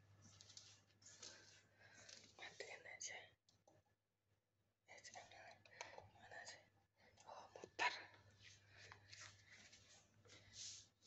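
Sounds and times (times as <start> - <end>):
person whispering: 2.4 - 3.4, 4.9 - 8.2.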